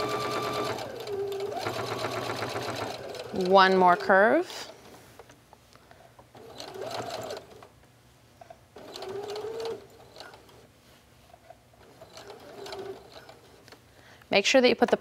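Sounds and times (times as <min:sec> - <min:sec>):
electric sewing machine stitching: 0:00.0 - 0:04.4, 0:06.4 - 0:07.6, 0:08.8 - 0:10.5, 0:11.8 - 0:13.5.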